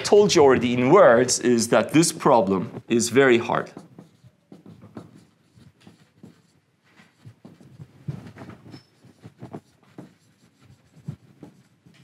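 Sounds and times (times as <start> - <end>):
marker writing on whiteboard: 0.0 - 12.0.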